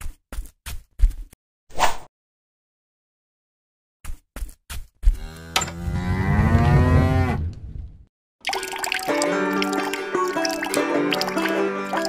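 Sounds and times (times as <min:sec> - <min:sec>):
cow mooing: 0:05.2 - 0:07.5.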